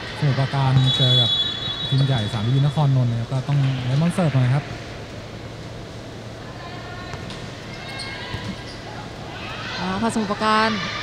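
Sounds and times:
murmur of sports hall: 0.0s - 11.0s.

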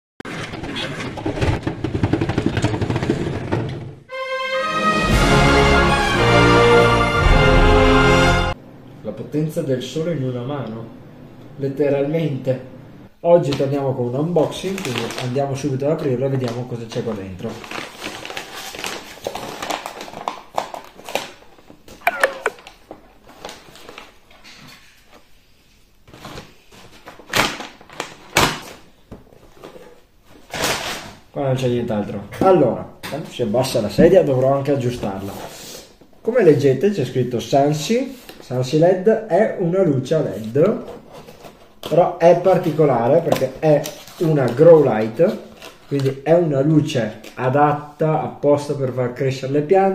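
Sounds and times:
paper bag tearing and crumpling: 14.4s - 15.4s, 16.9s - 21.5s, 30.5s - 31.2s
loud rustling rips: 14.5s - 15.4s, 17.4s - 21.5s, 30.4s - 31.2s
squeak falling in pitch: 22.0s - 22.6s.

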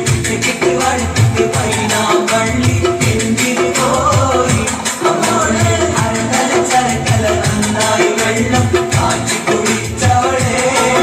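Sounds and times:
group singing: 0.0s - 11.0s
rhythmic hand clapping: 0.0s - 11.0s.

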